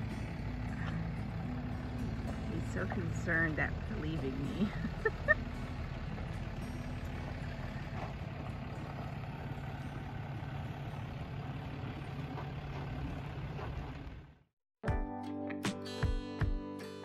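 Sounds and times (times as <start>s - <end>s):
vehicle engine humming: 0.0s - 14.5s.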